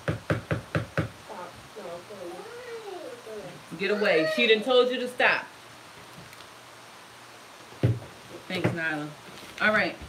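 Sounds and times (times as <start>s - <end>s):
cat meowing faintly: 1.3s - 4.5s.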